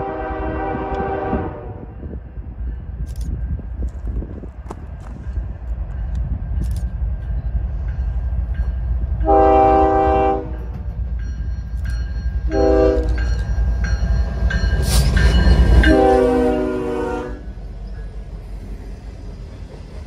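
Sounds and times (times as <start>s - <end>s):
train air horn blasts: 0.0s - 2.1s, 9.2s - 10.9s, 12.5s - 13.3s, 15.7s - 17.6s
locomotive and wheels rumbling: 0.0s - 20.0s.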